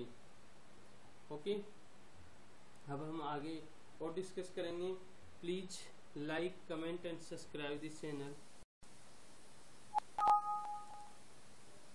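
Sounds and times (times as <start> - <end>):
two-tone electronic warning chime: 10.2 - 11.1.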